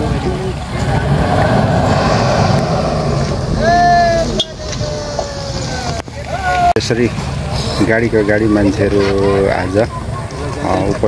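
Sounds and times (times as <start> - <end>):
bus engines rumbling: 0.0 - 8.4
outdoor crowd noise: 0.0 - 11.0
loud drawn-out shout: 0.8 - 6.7.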